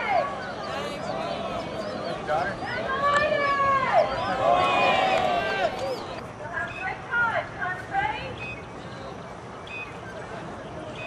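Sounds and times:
people calling out high: 0.0s - 7.4s
crowd chatter: 0.0s - 11.0s.

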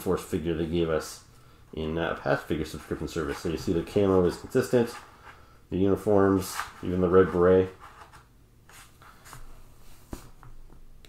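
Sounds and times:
hands sliding on tabletop: 7.8s - 10.6s.

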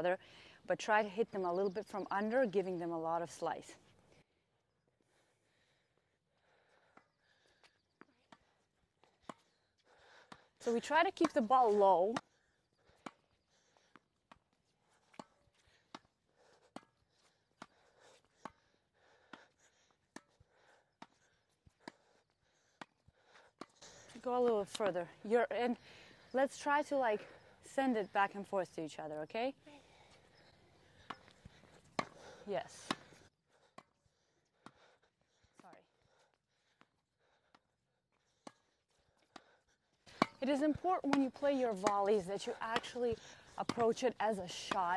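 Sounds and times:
tennis ball impacts: 10.3s - 12.3s, 15.0s - 16.1s, 31.0s - 34.0s, 40.1s - 44.9s.

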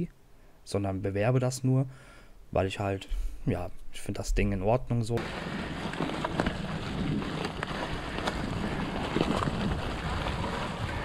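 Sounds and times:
bike knocks and rattles: 5.2s - 11.0s
tyres rustling dry leaves: 5.2s - 11.0s
wind rushing over microphone: 5.2s - 11.0s.

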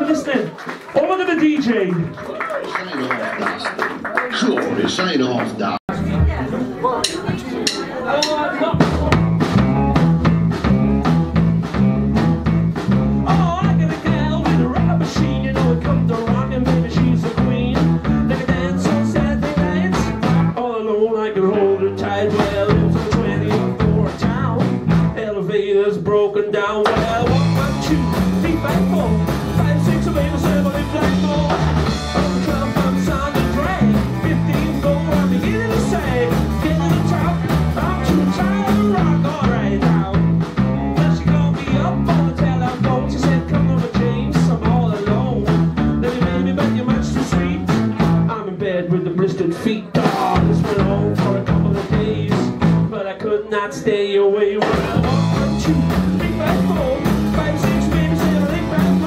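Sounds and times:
electric bass: 5.9s - 6.7s, 8.2s - 20.8s, 21.4s - 25.5s, 26.8s - 53.0s, 54.6s - 59.0s
drum kit: 5.9s - 20.7s, 21.9s - 25.5s, 26.8s - 53.1s, 54.5s - 59.0s
electric guitar: 26.9s - 53.0s, 54.6s - 59.0s.

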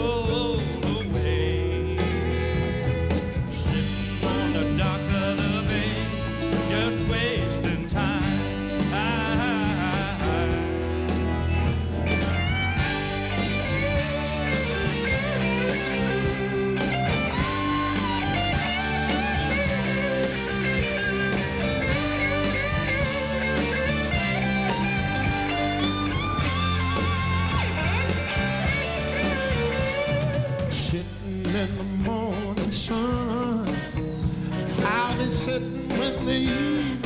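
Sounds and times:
soul band bass and drums: 0.0s - 37.0s
electric guitar solo: 8.5s - 30.8s.

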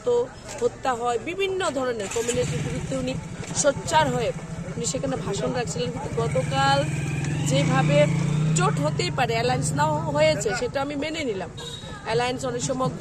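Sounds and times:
woman talking: 0.0s - 13.0s
vehicle engine running: 2.0s - 10.5s.

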